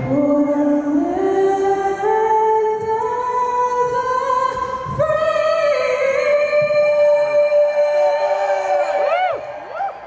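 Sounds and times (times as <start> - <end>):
woman singing over loudspeakers: 0.0 - 9.6.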